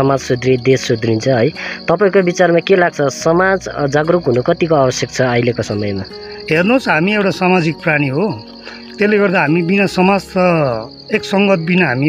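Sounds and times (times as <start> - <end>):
man speaking: 0.0 - 8.4, 9.0 - 12.0
high insect trill: 0.0 - 12.0.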